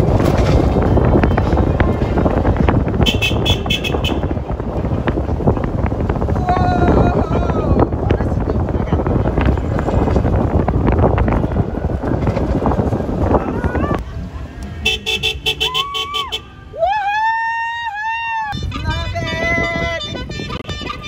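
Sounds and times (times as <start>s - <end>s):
cars passing: 0.0s - 21.0s
short car horn toots: 3.0s - 4.3s
crowd cheering: 14.9s - 18.6s.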